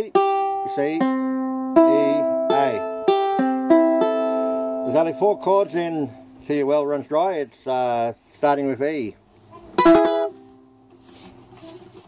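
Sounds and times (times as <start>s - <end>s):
ukulele chord strummed: 0.0s - 6.5s, 9.8s - 10.9s.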